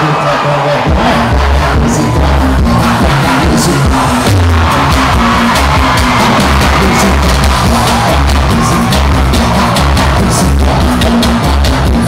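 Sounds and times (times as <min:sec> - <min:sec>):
pulsing bass beat and drums: 0:00.8 - 0:12.0
live band music: 0:00.9 - 0:12.0.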